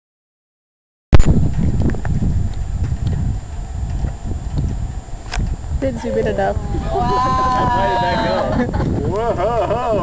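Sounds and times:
wind rumble on microphone: 0:01.2 - 0:10.0.

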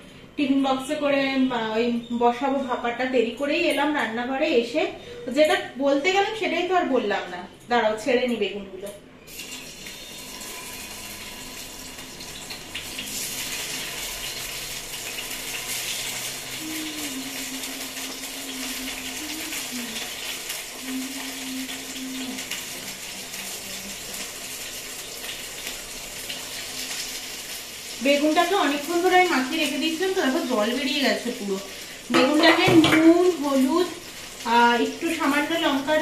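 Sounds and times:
vegetable slices sizzling in hot oil: 0:09.3 - 0:36.0.

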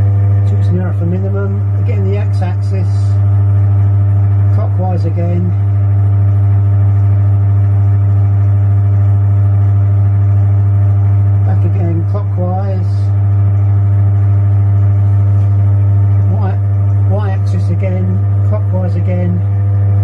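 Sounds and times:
milling machine humming: 0:00.0 - 0:20.0.

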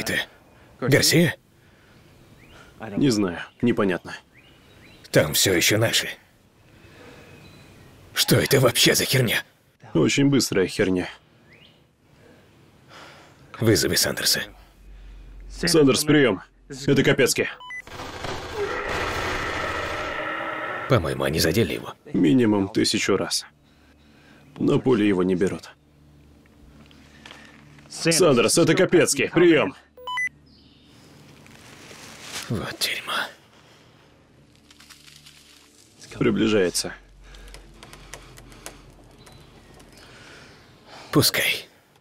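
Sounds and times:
low hum with hiss: 0:00.0 - 0:42.0.

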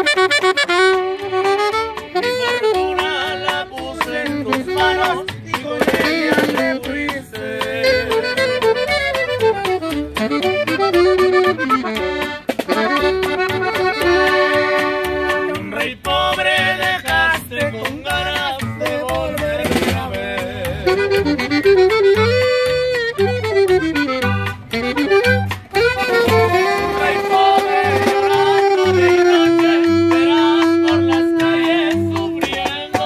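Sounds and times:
acoustic guitar strumming: 0:00.0 - 0:33.0
button accordion melody: 0:00.0 - 0:33.0
upright bass plucking: 0:00.0 - 0:33.0
snare drum beat: 0:02.0 - 0:09.8, 0:10.4 - 0:21.6, 0:25.2 - 0:33.0.

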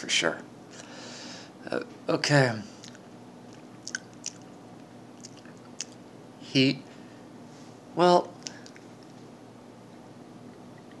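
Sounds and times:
lip smacks: 0:02.8 - 0:06.0, 0:08.4 - 0:09.1
tongue clicks: 0:03.8 - 0:04.5, 0:05.2 - 0:06.0.

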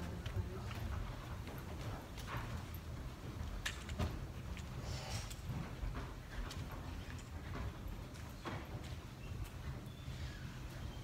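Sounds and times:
light footsteps: 0:00.0 - 0:11.0.

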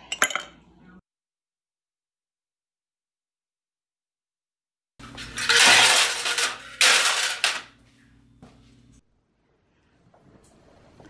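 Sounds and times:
metal cans clattering into plastic tub: 0:05.0 - 0:07.7.

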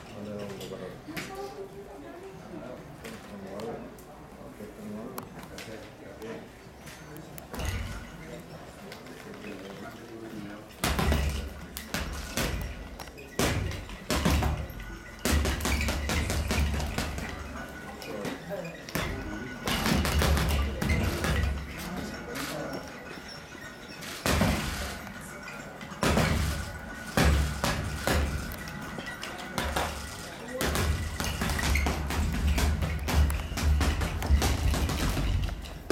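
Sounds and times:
background chatter: 0:00.0 - 0:35.9.

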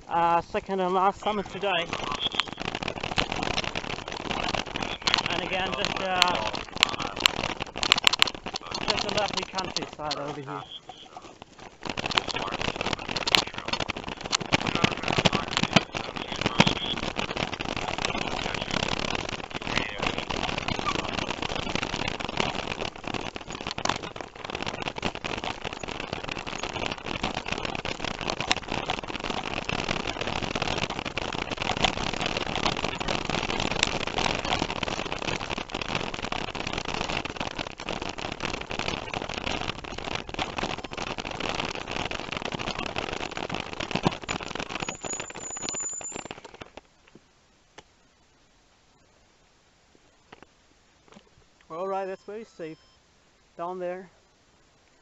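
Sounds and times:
bicycle tyres on dirt track: 0:00.0 - 0:15.9, 0:16.8 - 0:46.9
high squeal: 0:44.8 - 0:46.3.

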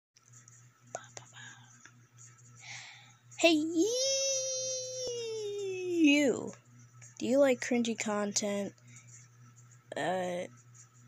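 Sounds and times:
steady low hum: 0:00.2 - 0:11.0.

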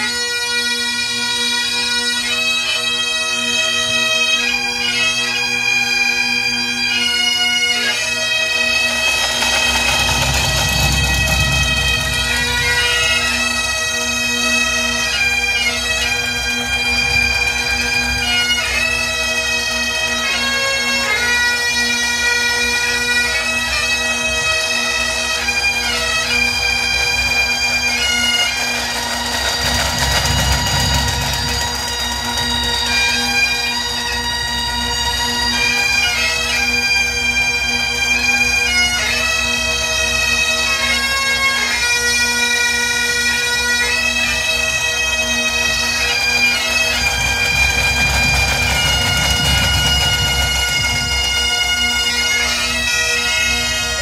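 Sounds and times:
bagpipes playing a tune: 0:00.0 - 0:54.0.

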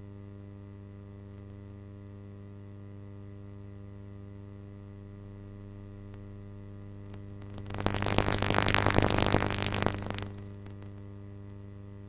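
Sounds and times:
buzzing mains hum: 0:00.0 - 0:12.0
harsh loud noise: 0:07.6 - 0:10.7.

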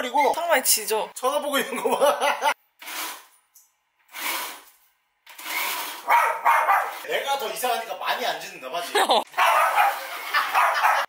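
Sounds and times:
blender grinding: 0:02.8 - 0:03.3, 0:04.1 - 0:06.1, 0:09.8 - 0:10.7.

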